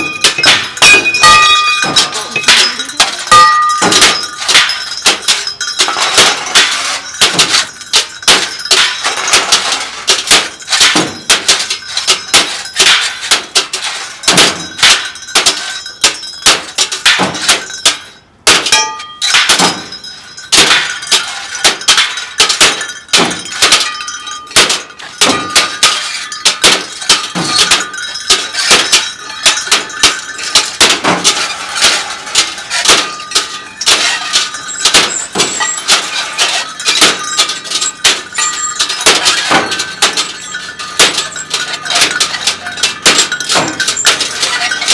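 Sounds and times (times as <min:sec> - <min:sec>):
glass breaking: 0:00.0 - 0:44.9
metal clanks and thunks: 0:00.0 - 0:44.9.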